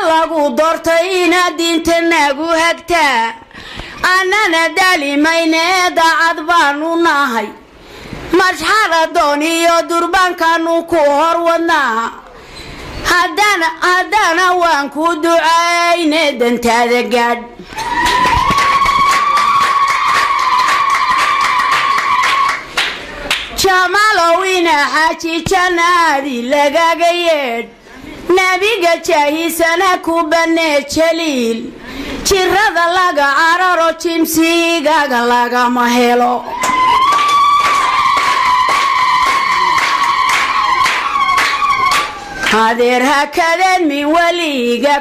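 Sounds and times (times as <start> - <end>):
woman ululating into a microphone: 36.4 - 42.5.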